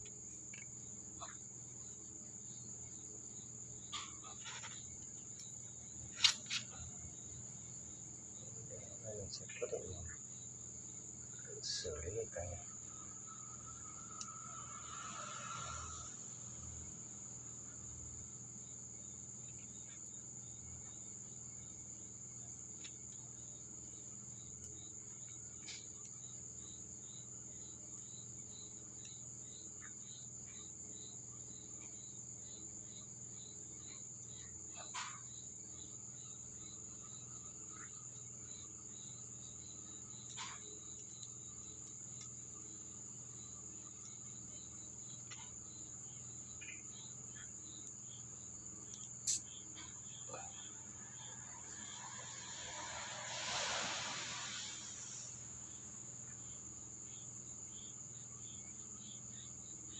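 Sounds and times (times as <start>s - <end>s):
crickets trilling: 0.0s - 59.9s
pulsed insect chirping: 0.0s - 59.9s.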